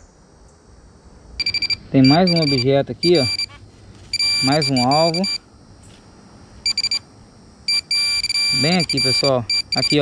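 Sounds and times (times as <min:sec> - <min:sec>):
metal detector beeping rapidly: 0:01.4 - 0:05.4, 0:06.6 - 0:10.0.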